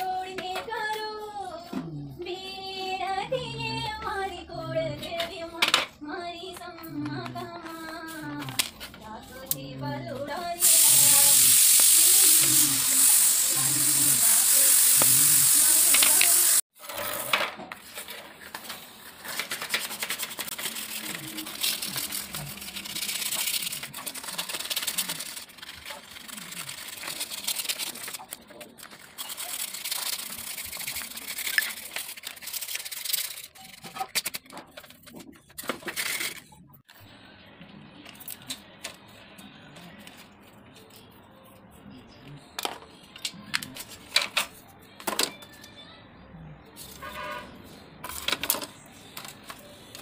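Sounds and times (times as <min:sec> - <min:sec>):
loud steady hiss: 0:10.6 - 0:16.6.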